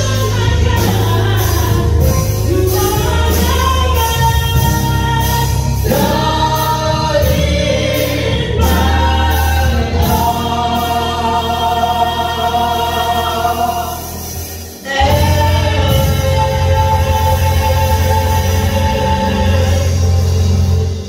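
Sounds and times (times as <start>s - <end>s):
heavy bass accompaniment: 0.0s - 21.0s
vocal group singing in harmony: 0.0s - 21.0s.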